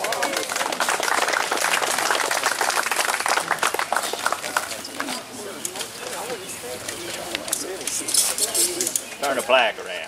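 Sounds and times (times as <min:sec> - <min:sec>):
crowd voices talking: 0:00.0 - 0:10.0.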